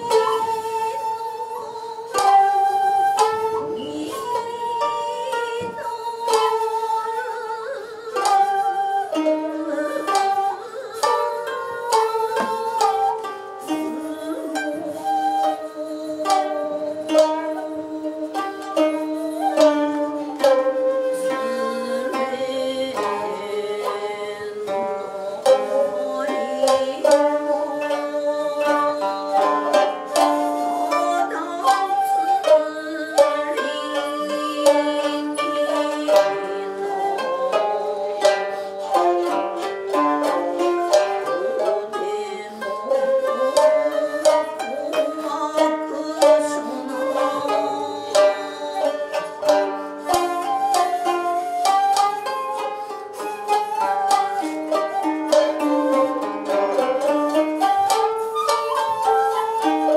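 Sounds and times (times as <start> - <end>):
koto and shamisen plucking: 0.0 - 59.9
shakuhachi bending tones: 0.0 - 59.9.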